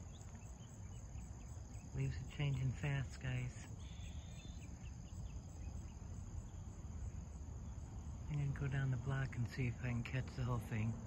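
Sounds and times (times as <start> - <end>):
high-pitched insect chorus: 0.0 - 11.0.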